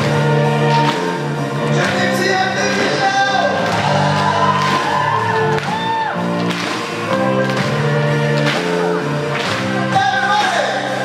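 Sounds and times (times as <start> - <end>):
orchestra and band playing: 0.0 - 11.0
man singing pop-rock song: 1.7 - 3.7.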